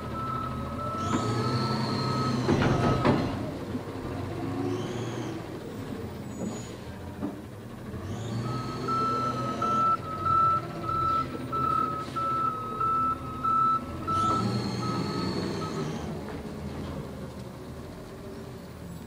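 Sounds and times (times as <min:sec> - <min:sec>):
truck backup alarm beeping: 0:00.0 - 0:03.5, 0:08.0 - 0:16.2
diesel engine running: 0:00.0 - 0:19.0.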